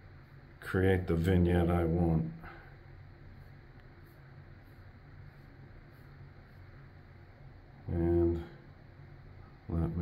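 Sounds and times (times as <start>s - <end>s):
low steady hum: 0.0s - 10.0s
man speaking: 0.6s - 2.6s, 7.8s - 8.6s, 9.7s - 10.0s.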